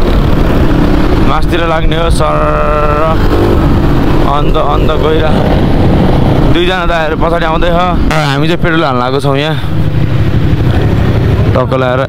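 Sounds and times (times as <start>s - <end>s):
dirt bike engine: 0.0s - 12.0s.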